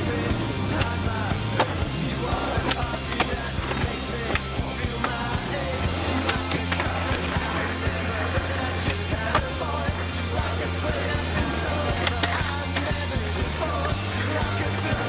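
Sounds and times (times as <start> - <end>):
music with steady bass line: 0.0 - 15.0
skateboard impacts: 0.8 - 9.8, 10.4 - 13.2.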